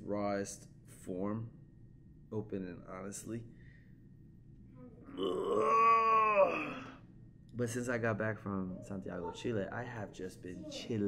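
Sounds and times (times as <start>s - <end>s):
man groaning: 5.2s - 7.0s.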